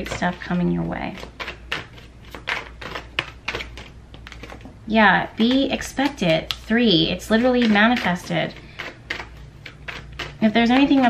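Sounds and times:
cards being shuffled: 1.1s - 11.0s.

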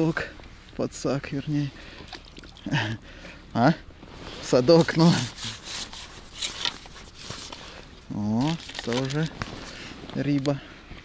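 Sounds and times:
landing net scraping: 4.1s - 7.7s
person speaking: 4.4s - 5.8s.

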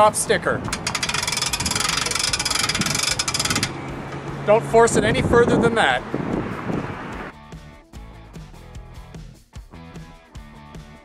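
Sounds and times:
hand-cranked winch clicking: 0.0s - 4.3s.

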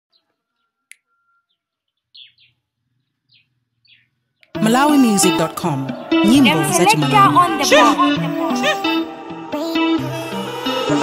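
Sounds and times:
faint bird chirps: 0.1s - 4.6s.

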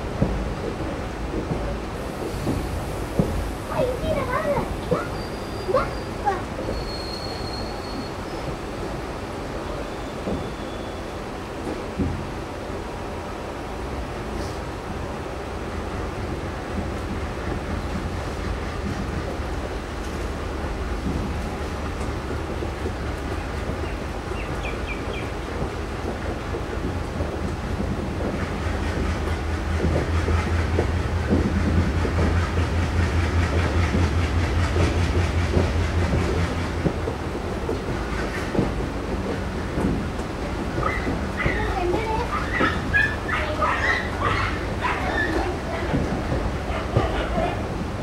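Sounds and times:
train rumble: 0.0s - 48.0s
wheels clattering over rail joints: 16.7s - 48.0s.

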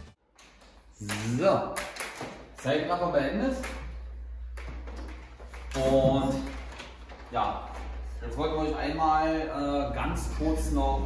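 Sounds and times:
man speaking: 1.0s - 1.8s.

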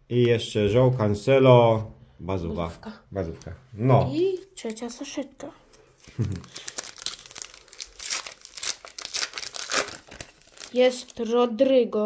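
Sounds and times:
foil wrapper crinkling and tearing: 6.0s - 11.2s.

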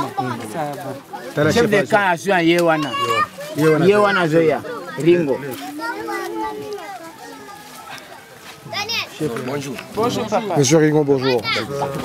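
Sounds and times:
adults and children talking: 0.0s - 12.0s.

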